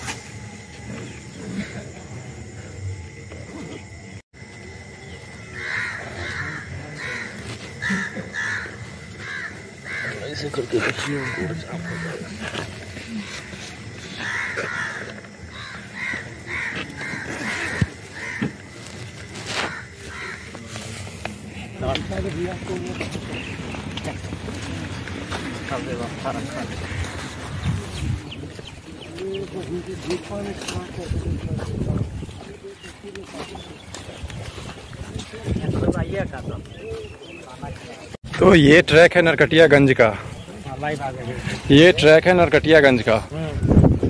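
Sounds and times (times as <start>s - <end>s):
birds calling: 4.8s - 44.0s
people talking indistinctly: 5.7s - 15.3s, 19.6s - 44.0s.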